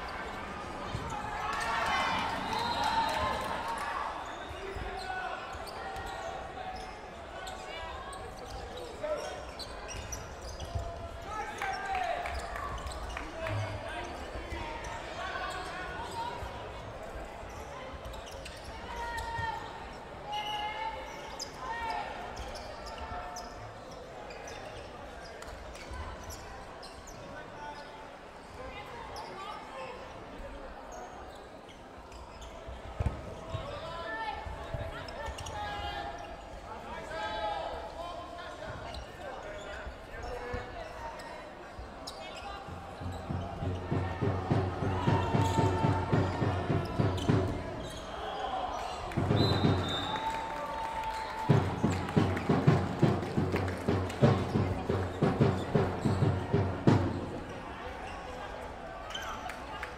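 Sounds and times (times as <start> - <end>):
players calling: 42.6 - 58.2.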